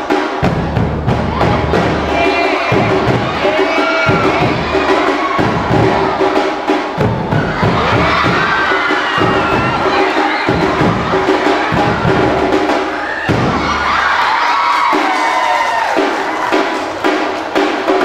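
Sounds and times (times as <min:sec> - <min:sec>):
crowd cheering and shouting: 0:00.0 - 0:18.0
drums beaten with sticks: 0:00.0 - 0:18.0.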